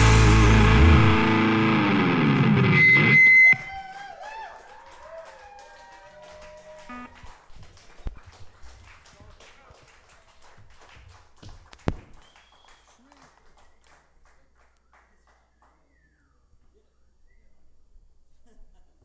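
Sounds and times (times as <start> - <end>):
rock band final chord: 0.0 - 3.6
audience whooping: 0.0 - 7.5
scattered clapping: 3.5 - 15.9.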